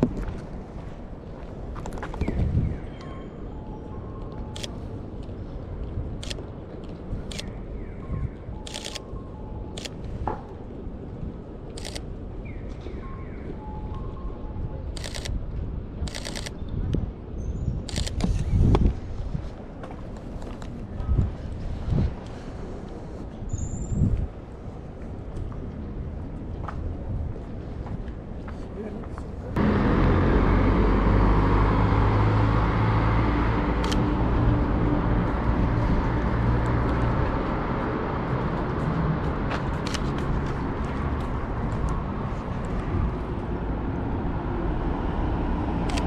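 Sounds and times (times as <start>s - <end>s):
wind buffeting microphone: 0.0s - 3.0s, 14.4s - 29.8s
road traffic noise: 0.0s - 46.0s
camera shutter clicks: 8.6s - 9.1s, 11.7s - 12.0s, 15.0s - 15.4s, 16.0s - 16.6s, 17.9s - 18.5s, 33.8s - 34.0s
vehicle engine humming: 29.6s - 46.0s.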